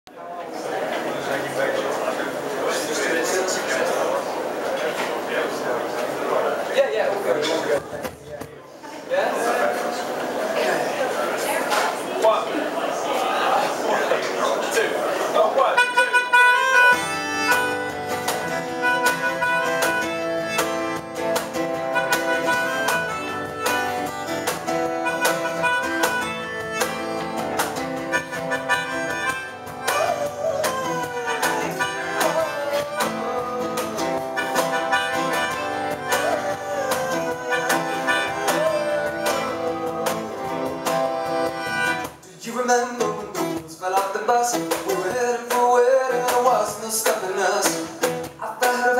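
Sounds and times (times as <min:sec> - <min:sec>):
melodica melody: 0:15.6 - 0:42.2
strummed acoustic guitar: 0:15.8 - 0:48.9.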